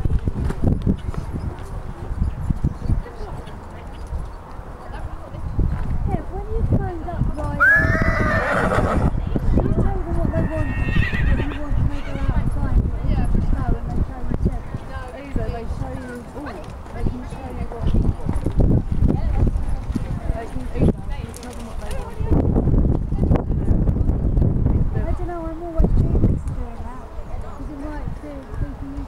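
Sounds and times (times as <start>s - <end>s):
horse whinnying: 7.6s - 9.2s, 10.3s - 12.4s.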